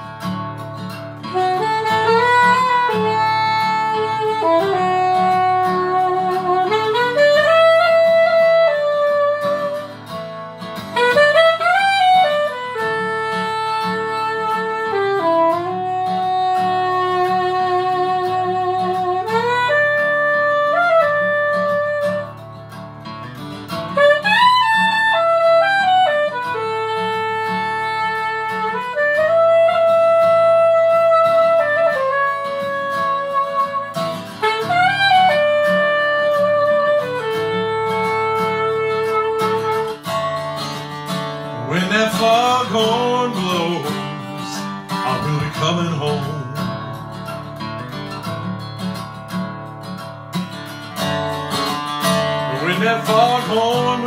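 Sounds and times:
backing track with guitar: 0.0s - 54.0s
soprano saxophone solo: 1.0s - 22.9s, 23.6s - 48.1s, 51.0s - 54.0s.

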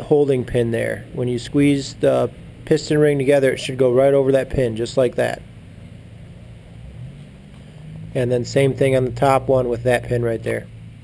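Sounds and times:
faint hiss: 0.0s - 9.5s
low steady hum: 0.0s - 11.0s.

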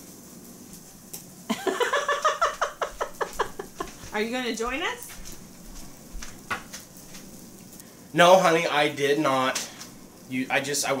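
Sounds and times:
person laughing hard: 1.5s - 4.0s.

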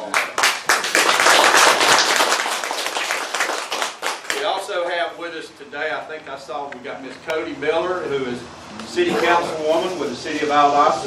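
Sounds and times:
audience applauding: 0.0s - 4.6s.

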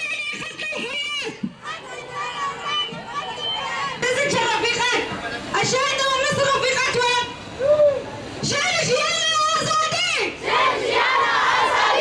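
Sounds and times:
crowd shouting together: 10.2s - 12.0s.

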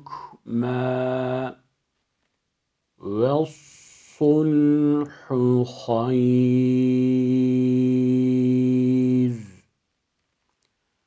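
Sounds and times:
man reciting in chant style: 0.0s - 1.7s, 3.0s - 9.7s.

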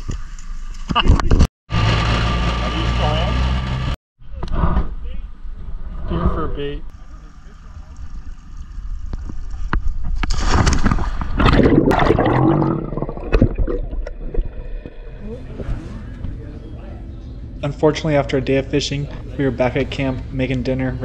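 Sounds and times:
water sloshing and gurgling: 7.8s - 16.4s
muffled underwater noise: 14.3s - 17.9s.

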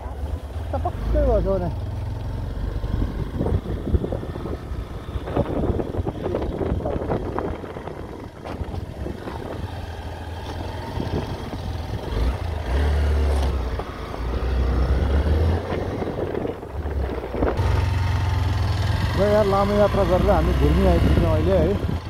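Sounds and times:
motorcycle engine drone: 0.0s - 22.0s
road noise: 0.0s - 22.0s.

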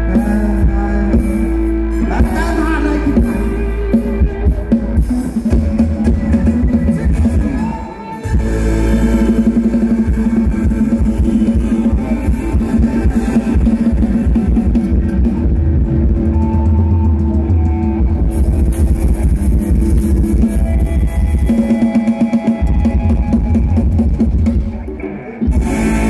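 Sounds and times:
amplified band music: 0.0s - 26.0s
heavy bass line: 0.0s - 26.0s.

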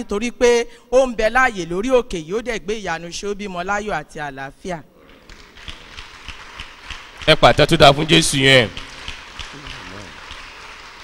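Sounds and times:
room noise: 4.9s - 11.0s
congregation clapping: 5.0s - 11.0s.

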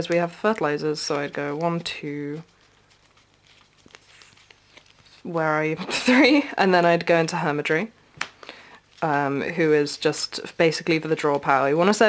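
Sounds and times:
trading cards rustling: 0.0s - 5.8s.

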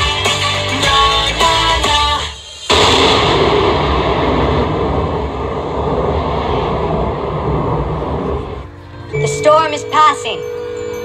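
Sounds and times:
music: 0.0s - 3.2s, 7.8s - 11.0s
rushing roar: 2.7s - 8.8s.

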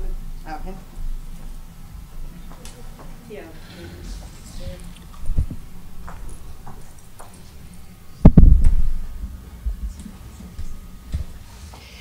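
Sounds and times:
faint room noise: 0.0s - 12.0s
microphone handling thumps: 4.2s - 7.4s, 8.2s - 11.4s.

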